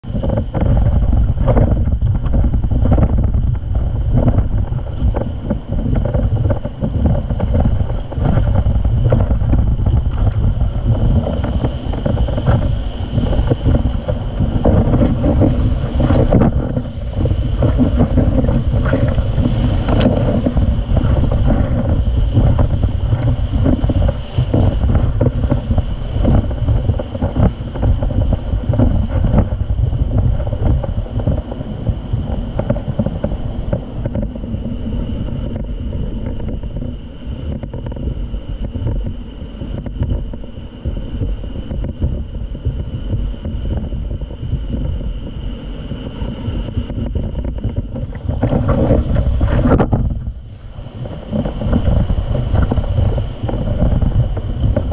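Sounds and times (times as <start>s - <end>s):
whitewater rapid rushing: 0.0s - 39.0s, 44.8s - 54.9s
wind buffeting microphone: 0.0s - 54.9s.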